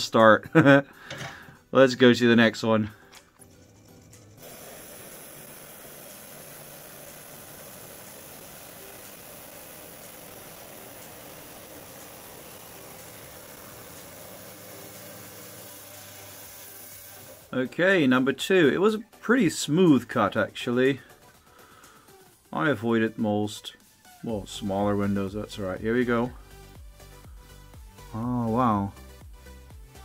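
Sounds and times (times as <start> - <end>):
wet saw cutting stone: 3.8 - 17.5.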